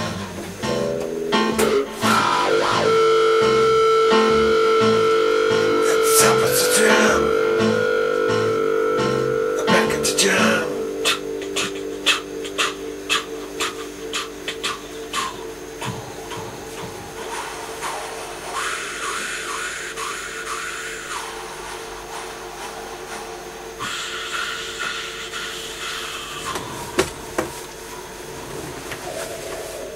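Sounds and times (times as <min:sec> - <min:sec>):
electric guitar picked notes: 0:00.0 - 0:13.1
sustained guitar drone: 0:00.0 - 0:20.0
wavering swept guitar tones: 0:00.6 - 0:19.0.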